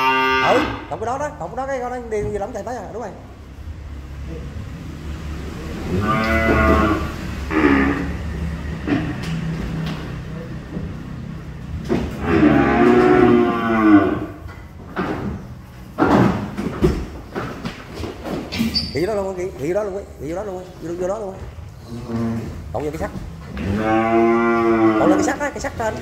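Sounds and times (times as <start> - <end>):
young cattle mooing: 0.0 - 0.9, 5.8 - 8.2, 12.2 - 14.4, 23.6 - 25.4.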